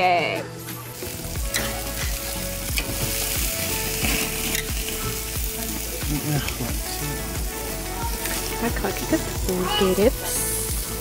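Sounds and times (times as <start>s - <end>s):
meat sizzling on grill: 0.0s - 11.0s.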